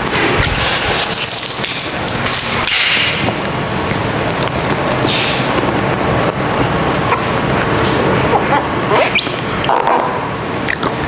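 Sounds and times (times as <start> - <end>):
steady background noise: 0.0 - 11.0
sprayer hissing: 0.4 - 2.7, 5.0 - 5.7.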